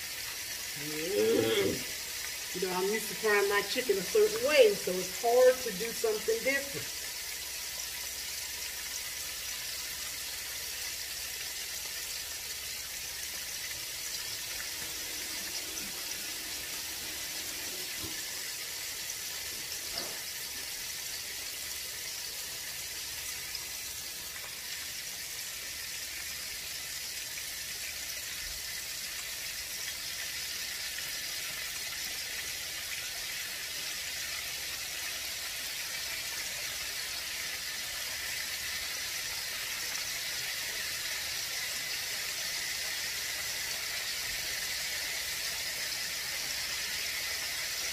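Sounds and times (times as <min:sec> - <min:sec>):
chicken deep-frying in oil: 0:00.0 - 0:47.9.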